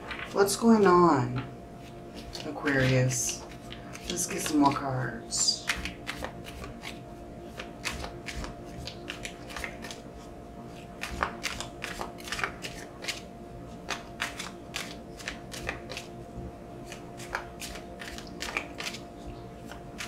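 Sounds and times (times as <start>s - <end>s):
cards being shuffled: 0.0s - 0.5s, 1.3s - 4.9s, 5.5s - 10.0s, 10.7s - 16.1s, 16.8s - 19.0s, 19.6s - 20.0s
faint steady hum: 0.0s - 20.0s.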